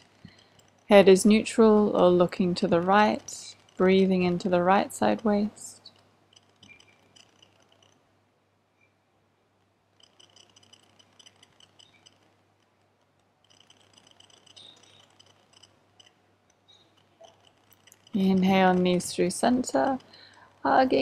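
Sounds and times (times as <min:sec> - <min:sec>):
faint high-pitched rapid ticking: 0:00.0 - 0:08.0, 0:10.0 - 0:21.0
steady low hum: 0:00.0 - 0:21.0.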